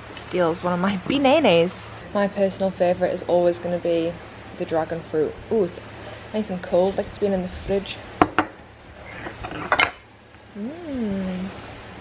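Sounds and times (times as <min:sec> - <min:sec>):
tableware clicks: 0:09.2 - 0:10.0
woman humming while chewing: 0:10.5 - 0:11.5.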